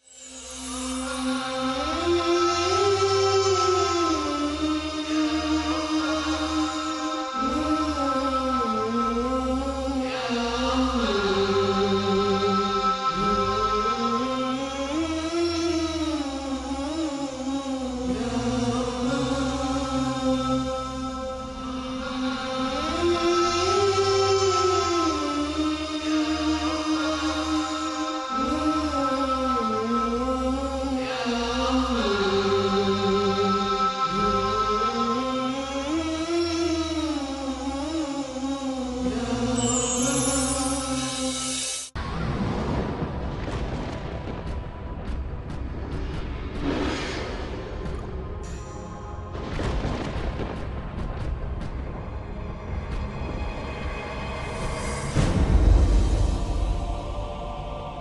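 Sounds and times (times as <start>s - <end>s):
voice chanting long notes: 0.0s - 42.0s, 53.4s - 58.0s
steady low drone: 0.0s - 58.0s.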